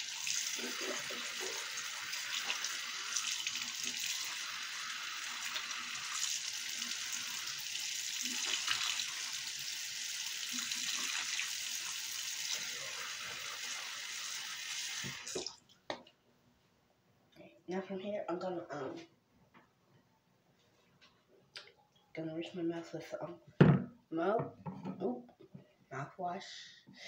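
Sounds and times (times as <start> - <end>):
sink tap running: 0.0 - 15.5.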